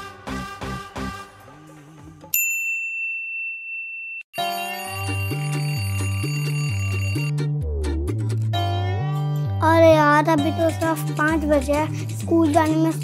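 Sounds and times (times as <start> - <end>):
background music: 0.0 - 2.4, 4.4 - 13.0.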